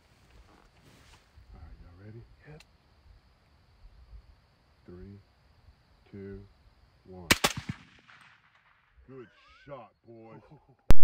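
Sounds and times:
gunshot echo: 7.3s - 8.9s
suppressed rifle shots: 7.3s - 8.9s.

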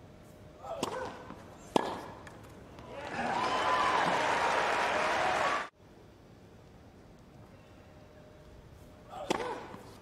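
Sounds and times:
tennis racket hitting ball: 0.6s - 2.4s, 9.1s - 10.0s.

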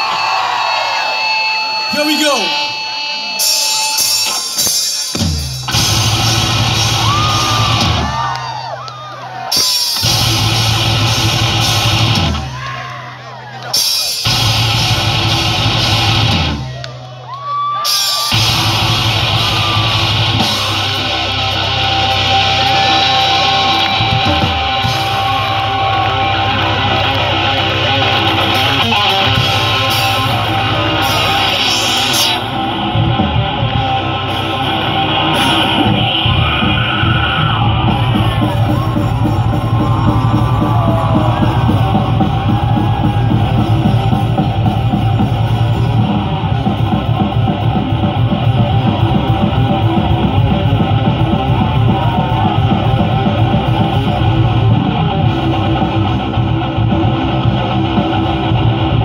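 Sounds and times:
crowd yelling and whooping: 0.0s - 59.0s
live rock band playing: 0.0s - 59.0s.

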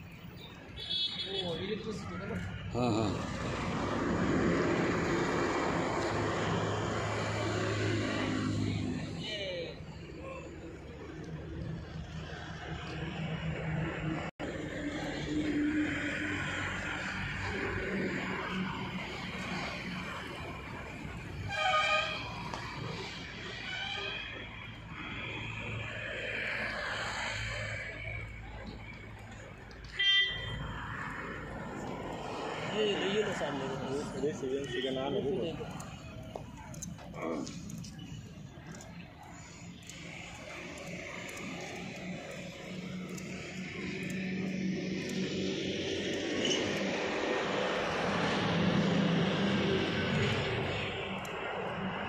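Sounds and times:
steady background noise: 0.0s - 52.0s
vehicle horn toot: 0.8s - 1.6s, 29.9s - 30.5s
engine drone: 1.9s - 52.0s.

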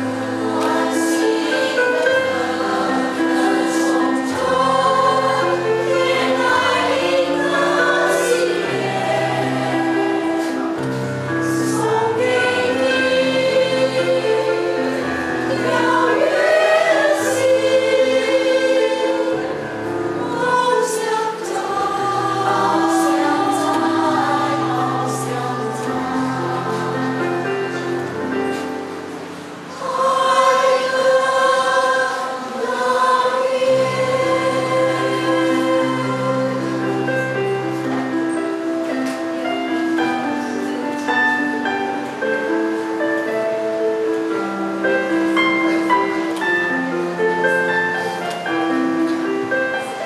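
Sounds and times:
women's choir singing in harmony: 0.0s - 50.0s.

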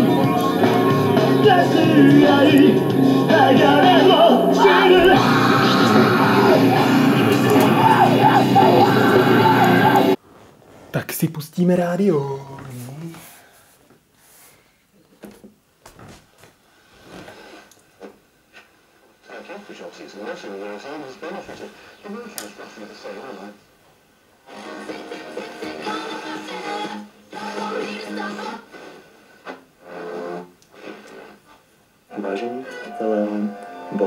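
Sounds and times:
radio broadcast from small speaker: 1.4s - 10.2s, 19.2s - 23.6s, 32.1s - 34.0s.

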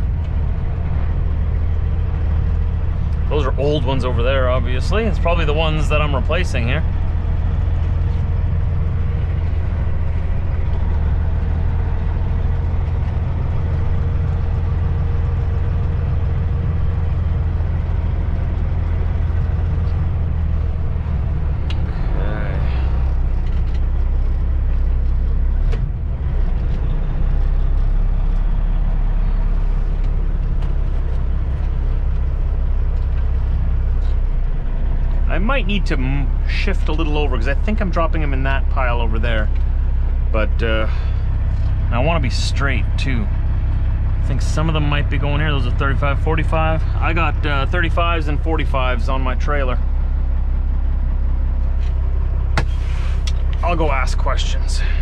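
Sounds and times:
diesel truck engine drone: 0.0s - 55.0s.

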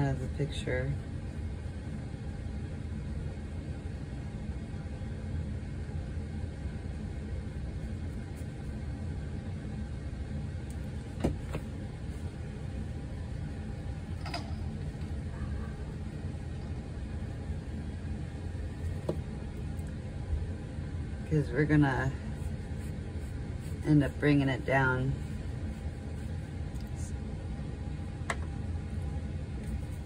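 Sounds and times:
low hum of room noise: 0.0s - 30.0s.

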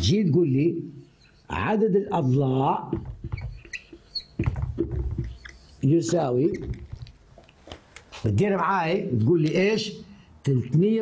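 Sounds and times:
marker squeaking on whiteboard: 1.0s - 1.6s, 2.8s - 8.2s.

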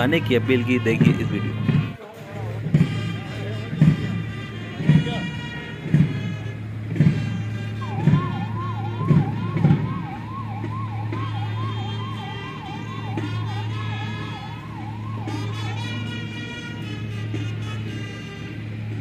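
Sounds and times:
music with drum beat: 0.0s - 16.4s
siren wailing in rising sweeps: 7.7s - 17.8s.

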